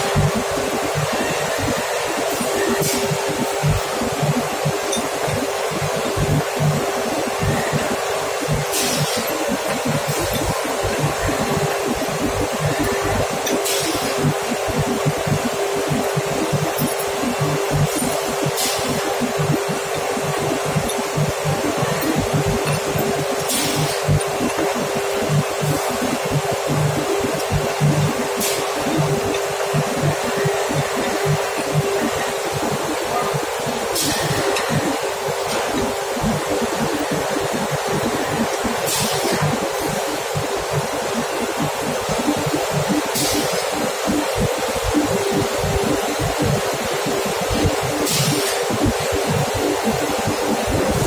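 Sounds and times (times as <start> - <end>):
industrial machinery drone: 0.0 - 51.0.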